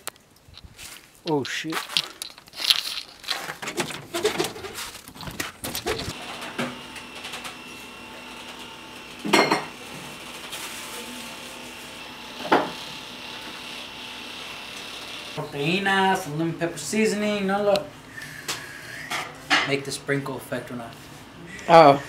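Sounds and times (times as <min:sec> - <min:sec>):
handling noises and knocks: 0:00.0 - 0:06.2
dishes clunking: 0:09.2 - 0:09.8.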